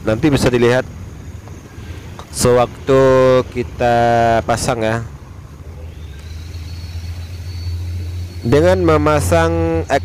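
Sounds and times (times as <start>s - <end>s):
faint high whine: 0.0s - 10.0s
low mechanical hum: 0.0s - 10.0s.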